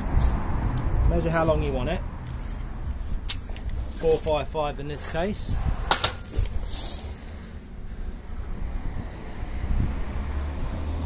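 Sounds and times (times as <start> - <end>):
wind buffeting microphone: 0.0 - 10.8.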